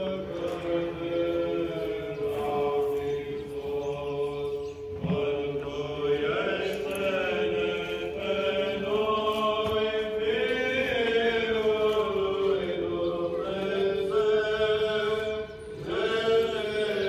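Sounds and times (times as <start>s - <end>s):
voices chanting slow melody: 0.0s - 17.0s.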